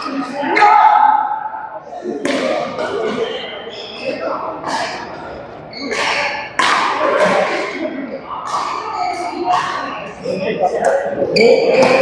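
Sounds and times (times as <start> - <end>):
rackets hitting shuttlecock: 2.2 - 2.9, 4.6 - 10.0.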